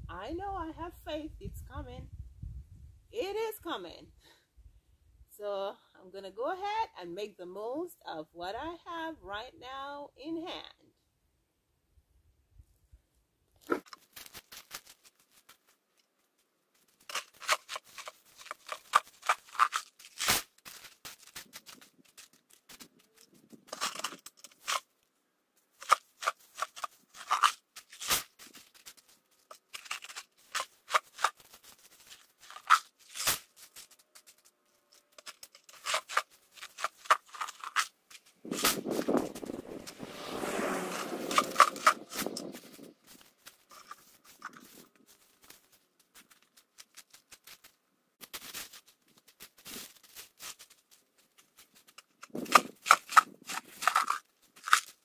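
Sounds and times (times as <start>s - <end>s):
gravel stones clattering: 16.8s - 24.8s, 25.8s - 55.0s.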